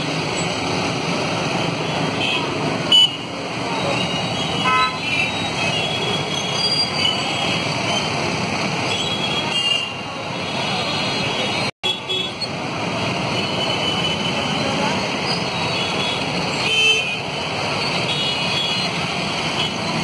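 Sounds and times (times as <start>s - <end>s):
busy street traffic: 0.0s - 20.0s
vehicle horns tooting: 3.8s - 6.4s, 15.7s - 17.3s.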